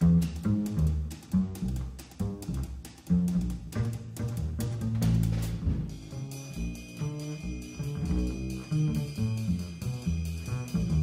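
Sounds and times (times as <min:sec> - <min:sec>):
double bass plucking: 0:00.0 - 0:11.0
drums and cymbals: 0:00.0 - 0:11.0.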